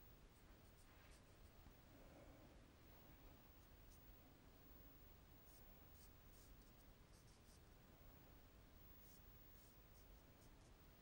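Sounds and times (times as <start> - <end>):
brush strokes on paper: 0.4 - 1.6, 5.4 - 7.7, 9.0 - 11.0.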